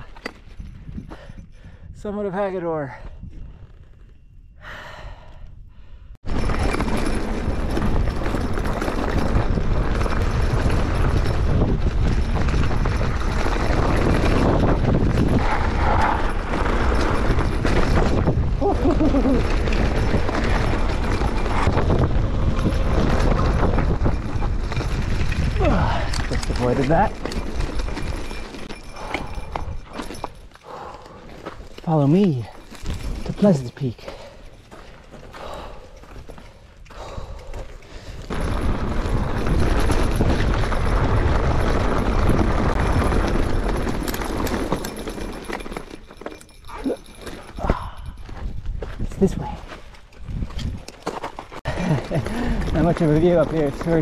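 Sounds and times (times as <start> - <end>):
mountain bike rattling on dirt: 0.0 - 4.4, 6.2 - 54.0
wind rush on camera: 0.0 - 30.8, 36.9 - 45.6, 46.4 - 54.0.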